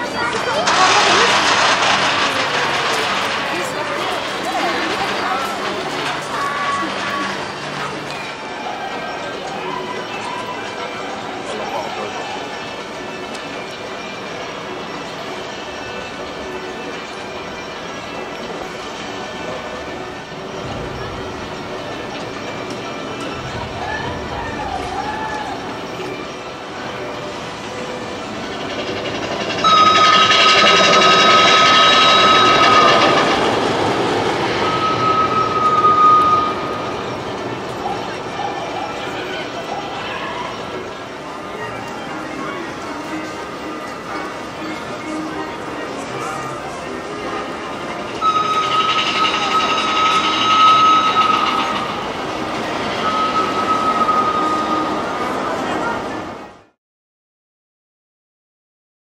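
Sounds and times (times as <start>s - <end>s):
roller coaster rushing on track: 0.0s - 56.8s
steady high-pitched tone: 25.5s - 56.7s.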